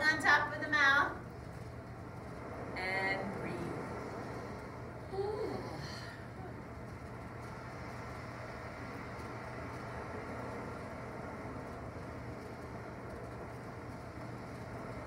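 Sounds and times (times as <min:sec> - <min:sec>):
faint low hum: 0:00.0 - 0:15.0
ocean waves: 0:01.1 - 0:15.0.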